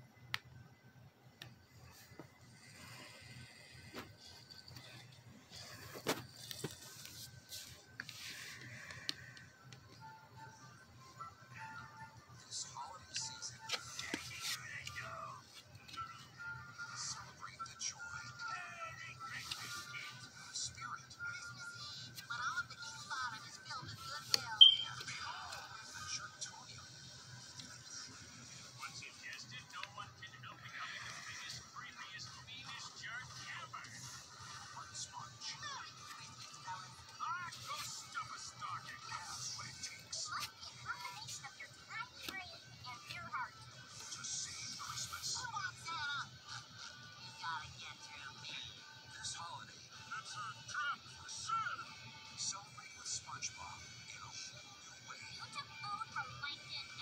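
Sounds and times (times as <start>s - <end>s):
music through tv speakers: 0.0s - 57.0s.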